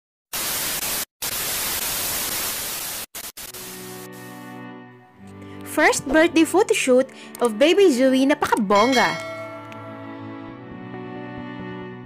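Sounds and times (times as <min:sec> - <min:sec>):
loud static hiss: 0:00.4 - 0:04.4
music: 0:03.5 - 0:12.0.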